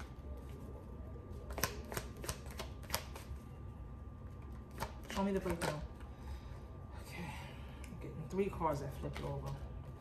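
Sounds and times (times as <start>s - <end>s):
cards being shuffled: 1.3s - 3.3s.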